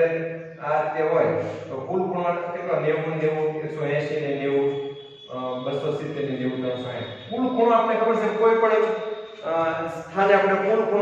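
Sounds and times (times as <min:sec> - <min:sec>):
man talking: 0:00.0 - 0:04.7, 0:05.3 - 0:11.0.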